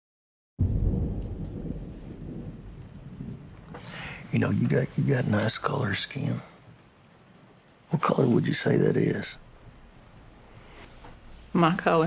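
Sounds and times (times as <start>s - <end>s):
low rumble: 0.6s - 5.3s.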